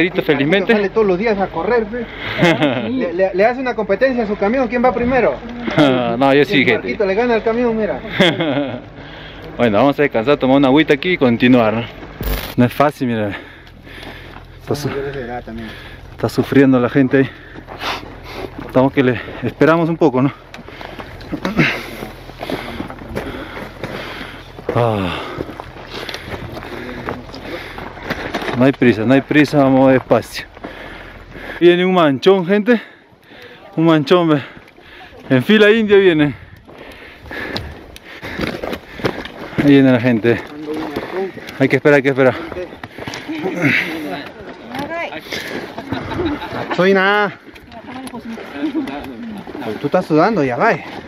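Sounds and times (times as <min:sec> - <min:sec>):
hikers' voices passing: 0:00.0 - 0:51.0
footsteps on loose rock: 0:12.0 - 0:12.7, 0:17.3 - 0:31.5, 0:34.5 - 0:51.0
trekking poles clicking on rock: 0:36.6 - 0:41.7, 0:42.4 - 0:45.8, 0:47.5 - 0:51.0.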